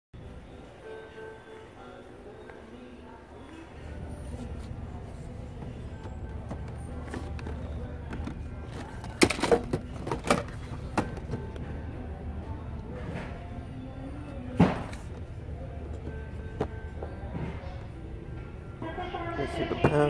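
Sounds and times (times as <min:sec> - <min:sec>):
quiet background music: 0:00.2 - 0:20.0
packaging knocks and clatters: 0:06.5 - 0:11.4.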